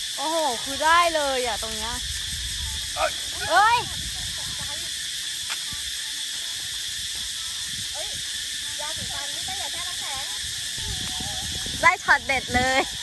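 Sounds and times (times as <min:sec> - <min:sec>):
high-pitched insect chorus: 0:00.0 - 0:13.0
faint conversation: 0:00.2 - 0:06.0, 0:07.8 - 0:13.0.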